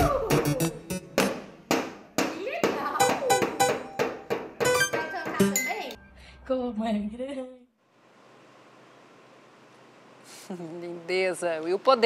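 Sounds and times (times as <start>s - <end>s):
toy drum and xylophone hits: 2.7s - 6.0s.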